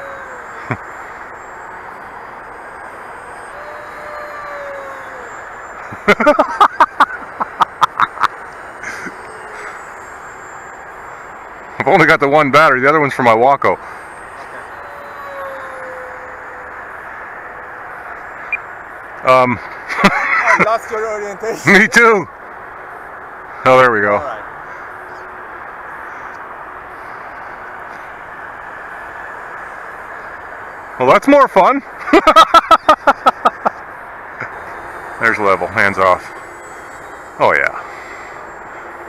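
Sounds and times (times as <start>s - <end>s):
distant electric motor whine: 0.0s - 39.0s
steady rushing hiss: 0.0s - 39.0s
man laughing: 0.2s - 0.8s, 5.8s - 9.2s, 19.9s - 20.9s, 32.0s - 33.8s.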